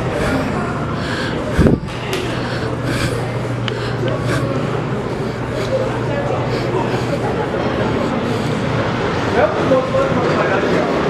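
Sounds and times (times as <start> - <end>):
steady low hum: 0.0 - 11.0
street background noise: 0.0 - 11.0.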